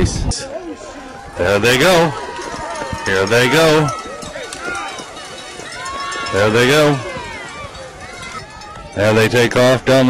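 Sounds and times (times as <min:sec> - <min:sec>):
spectators calling out: 0:00.4 - 0:10.0.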